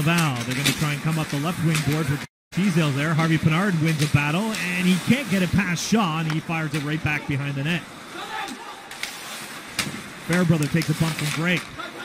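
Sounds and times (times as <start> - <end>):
skates and sticks on ice: 0.0 - 2.2, 2.8 - 7.3, 8.2 - 12.0.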